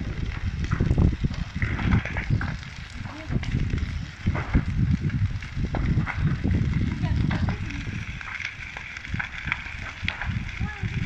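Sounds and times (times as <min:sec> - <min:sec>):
large fire crackling and rumbling: 0:00.0 - 0:11.0.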